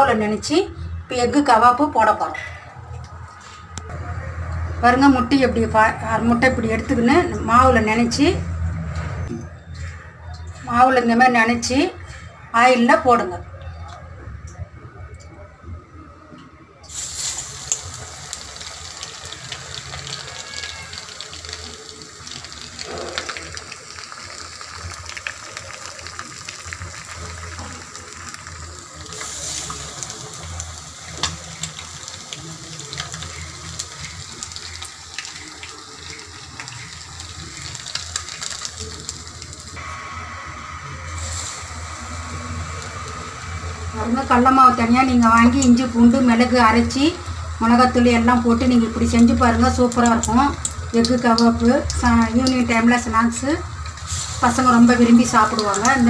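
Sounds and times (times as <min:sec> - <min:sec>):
eggs deep-frying in oil: 0:16.9 - 0:56.0.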